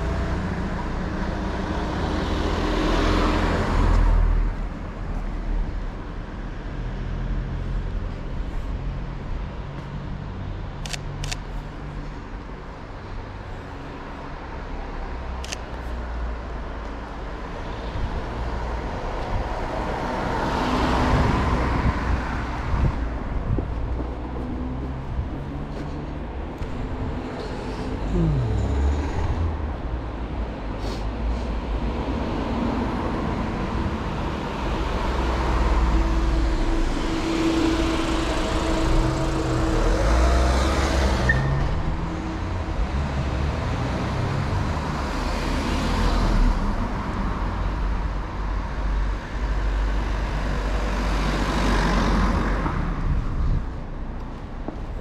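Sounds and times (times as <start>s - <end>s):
low traffic rumble: 0.0s - 55.0s
vehicles passing: 0.0s - 55.0s.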